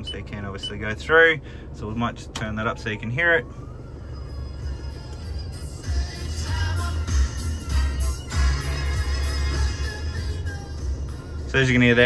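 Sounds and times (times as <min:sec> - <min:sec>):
radio music through car speakers: 0:00.0 - 0:12.0.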